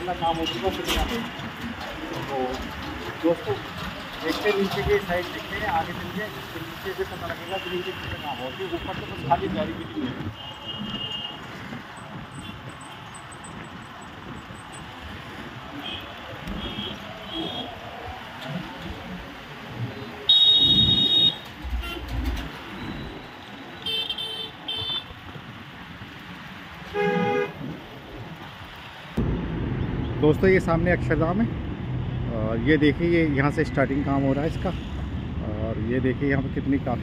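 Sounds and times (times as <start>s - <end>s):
road traffic noise: 0.0s - 37.0s
vehicle horns honking: 7.4s - 11.4s, 15.8s - 17.7s, 20.3s - 25.1s, 26.9s - 27.6s.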